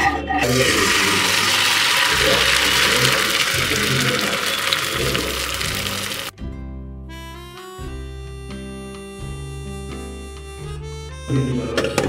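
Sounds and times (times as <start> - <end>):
background music with held notes: 0.0 - 12.0
omelette sizzling in a hot pan: 0.5 - 6.3.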